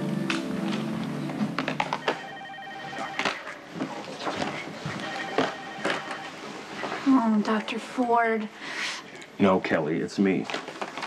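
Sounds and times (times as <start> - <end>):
desk telephone ringing: 1.9 - 3.6, 5.0 - 7.0.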